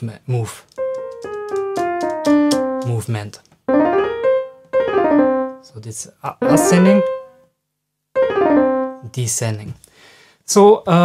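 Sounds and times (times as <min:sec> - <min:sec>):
piano notes: 0:00.8 - 0:07.5, 0:08.2 - 0:09.2.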